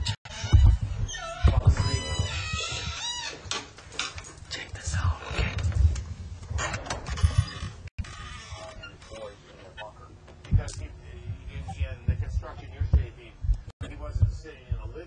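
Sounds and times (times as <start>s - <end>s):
voices making pitch-sliding sounds: 0.0s - 3.5s, 6.5s - 14.7s.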